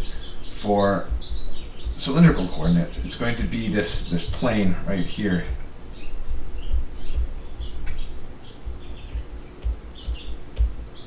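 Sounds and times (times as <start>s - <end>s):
dull knocks of pen strokes: 7.2s - 10.8s.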